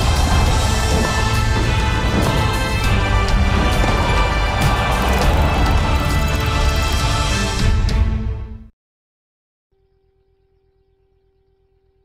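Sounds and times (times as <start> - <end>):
tv ident theme music: 0.0 - 8.6.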